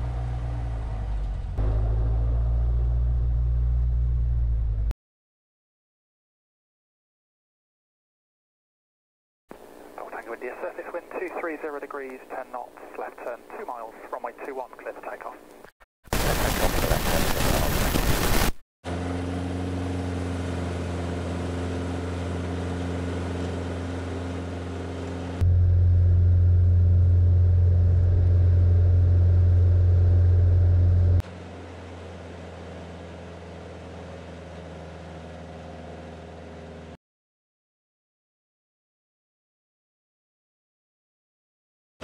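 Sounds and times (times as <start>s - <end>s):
light aircraft engine drone: 9.5s - 15.7s, 18.9s - 37.0s.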